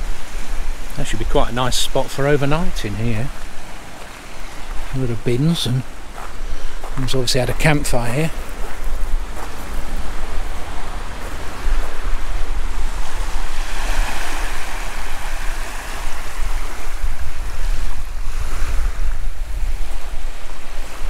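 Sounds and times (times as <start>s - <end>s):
waves lapping on stony shore: 0.0s - 21.0s
wind buffeting microphone: 0.0s - 21.0s.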